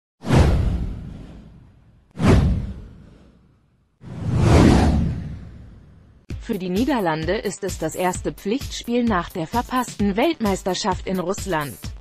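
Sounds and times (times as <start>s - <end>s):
deep whoosh sound effect: 0.2s - 6.2s.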